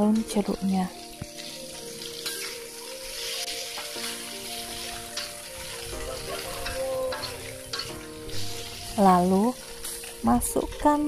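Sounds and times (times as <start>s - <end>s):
chilies sizzling in oil: 0.0s - 11.0s
metal spatula stirring: 1.4s - 10.8s.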